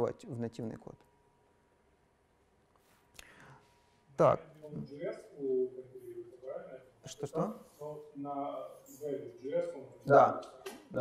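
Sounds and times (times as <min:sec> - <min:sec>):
man asking a question: 0:04.2 - 0:11.0.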